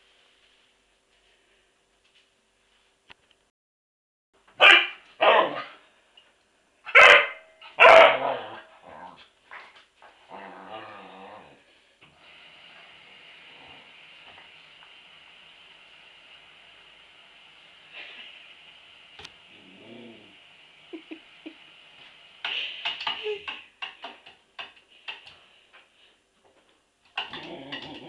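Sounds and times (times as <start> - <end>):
dog yapping: 4.6 - 5.7, 6.9 - 8.7
dog barking: 4.6 - 5.8, 6.9 - 8.6
dog growling: 8.2 - 9.3, 10.3 - 11.6, 19.5 - 20.4, 27.2 - 28.0.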